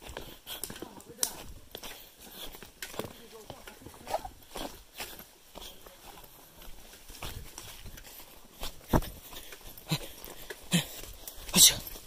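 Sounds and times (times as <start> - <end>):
footsteps on rough path: 0.0 - 12.0.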